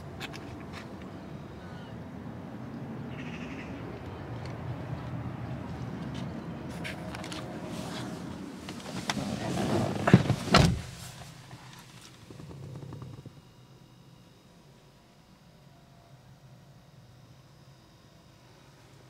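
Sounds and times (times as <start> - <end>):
faint steady hum: 0.0 - 19.0
sharp thunks: 10.0 - 11.0.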